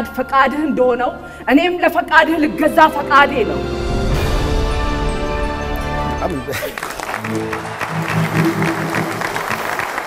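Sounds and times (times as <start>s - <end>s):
studio audience applauding: 6.2s - 10.0s
music sting: 7.2s - 10.0s.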